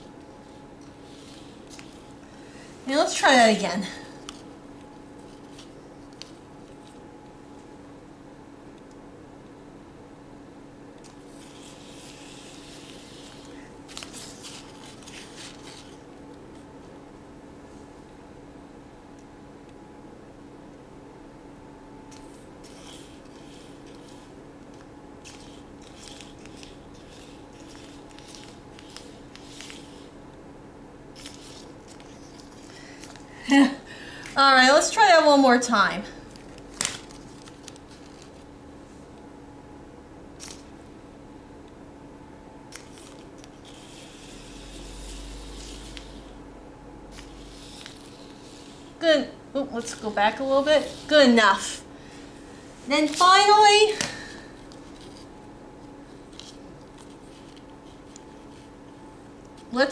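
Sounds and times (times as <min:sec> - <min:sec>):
faint steady hum: 0:00.0 - 0:59.9.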